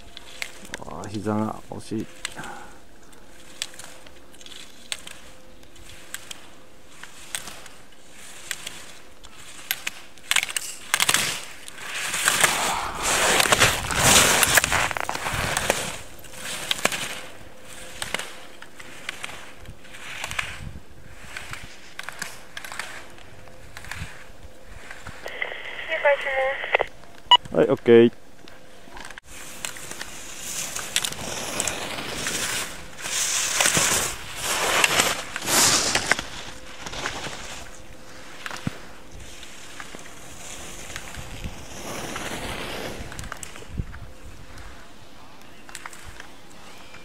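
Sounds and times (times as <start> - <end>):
skis carving over packed snow: 0.0 - 25.3, 28.7 - 47.0.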